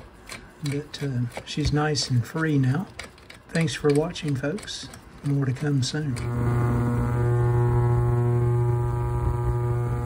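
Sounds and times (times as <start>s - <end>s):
ultrasonic cleaner buzzing hum: 6.0s - 10.0s.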